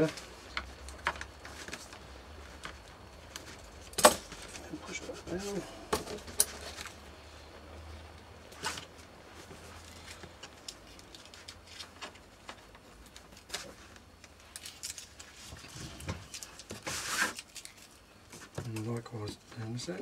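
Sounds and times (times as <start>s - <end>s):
paper and tape rustling: 0.0s - 7.0s, 8.5s - 19.4s.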